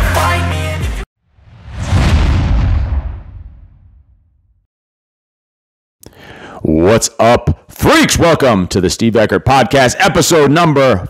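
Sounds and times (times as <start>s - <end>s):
deep cinematic boom: 1.4s - 4.6s.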